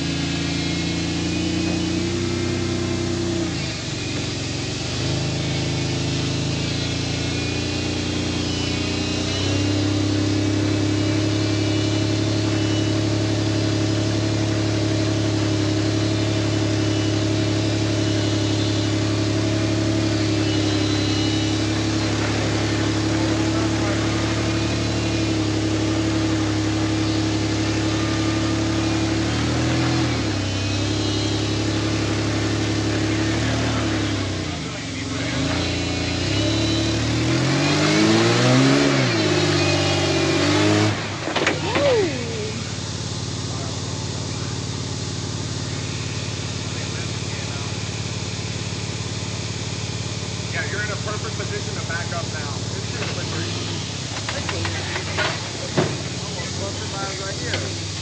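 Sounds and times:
car engine running: 0.0s - 58.0s.

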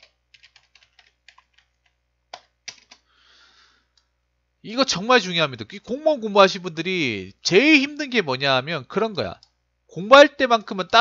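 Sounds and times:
computer keyboard typing: 0.0s - 3.0s.

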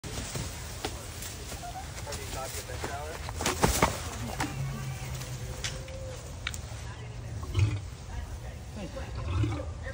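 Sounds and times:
people talking: 0.7s - 9.9s.

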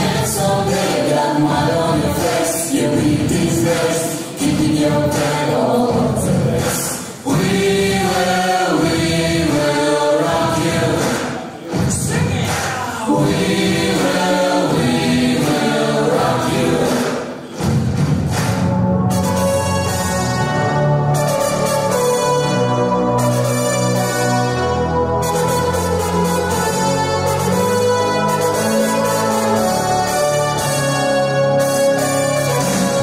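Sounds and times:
mixed choir singing: 0.0s - 11.8s, 12.8s - 17.6s.

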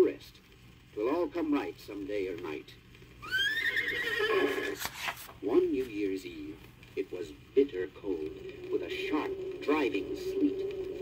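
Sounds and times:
horse whinny: 3.2s - 4.8s.

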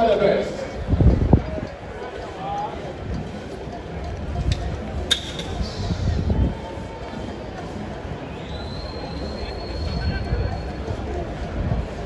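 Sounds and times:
crowd murmur: 0.0s - 12.0s.

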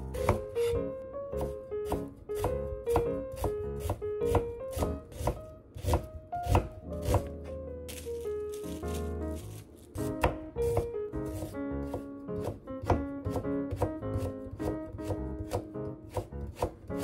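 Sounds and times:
background music: 0.0s - 17.0s
knife chopping on plastic board: 0.2s - 0.8s, 1.4s - 17.0s
knife slicing carrot: 0.2s - 17.0s
plastic wrap crinkling: 7.9s - 10.2s.

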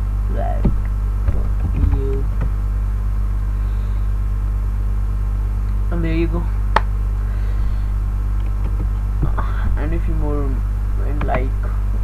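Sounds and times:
low electrical mains hum: 0.0s - 12.0s.

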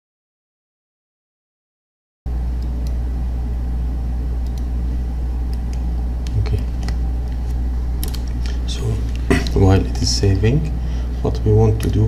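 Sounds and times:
low electrical hum: 2.3s - 12.0s.

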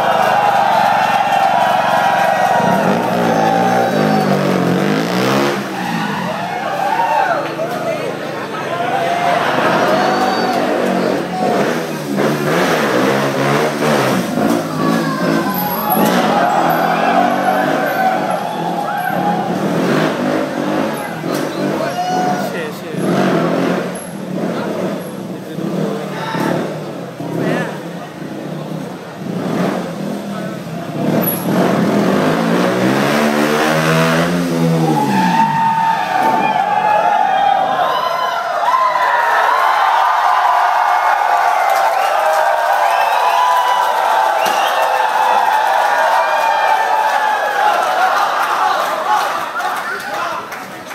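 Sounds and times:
motorcycle engine revving: 0.0s - 6.4s, 9.4s - 21.8s, 22.9s - 35.5s
crowd shouting and cheering: 0.0s - 50.9s.

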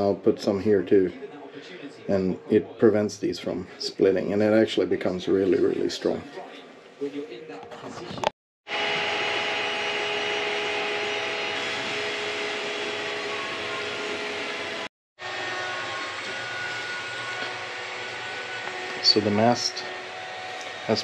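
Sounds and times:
motor whines: 8.7s - 21.0s
printer fan noise: 8.7s - 21.0s.

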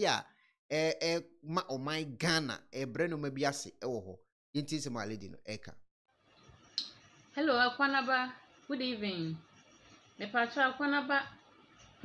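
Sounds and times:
man speaking: 0.0s - 5.8s.

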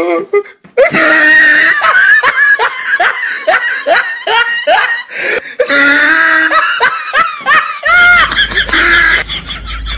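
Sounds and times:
people laughing hard: 0.8s - 9.9s.

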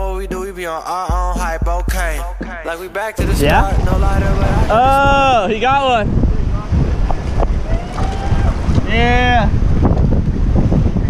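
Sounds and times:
man calling out: 3.2s - 6.2s
surf breaking on rocks: 3.2s - 11.0s
wind buffeting microphone: 3.2s - 11.0s.

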